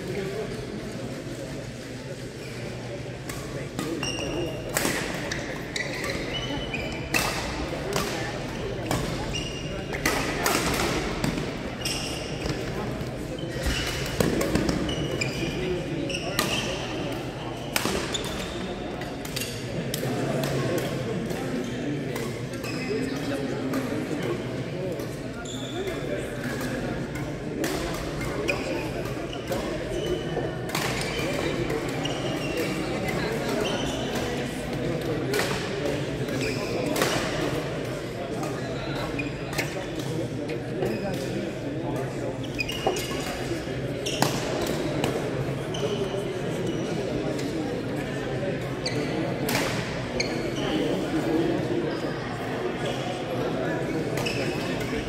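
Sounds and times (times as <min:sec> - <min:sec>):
murmur of voices: 0:00.0 - 0:55.0
shoes squeaking on floor: 0:04.0 - 0:04.6, 0:05.3 - 0:07.2, 0:09.2 - 0:09.8, 0:11.8 - 0:12.8, 0:14.6 - 0:18.8, 0:25.4 - 0:26.0, 0:32.0 - 0:34.2, 0:42.4 - 0:43.2, 0:53.8 - 0:55.0.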